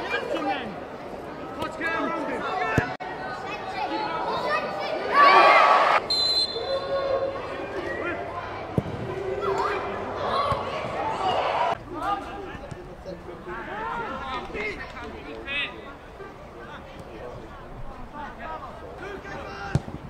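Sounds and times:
players shouting: 1.6 - 15.8.

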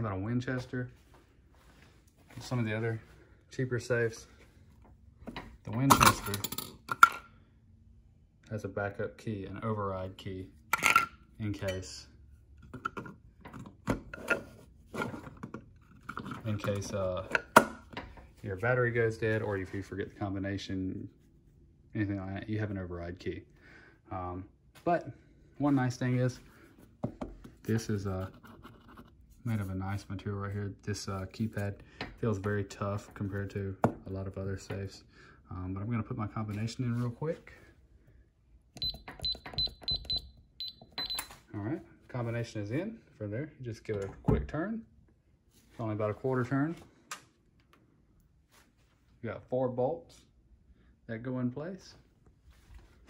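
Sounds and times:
keypad beeping: 38.8 - 41.3.

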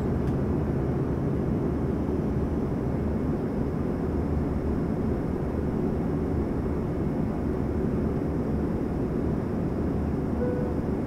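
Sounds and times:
cabin airflow rush: 0.0 - 11.0
brief faint tone: 10.4 - 11.0.

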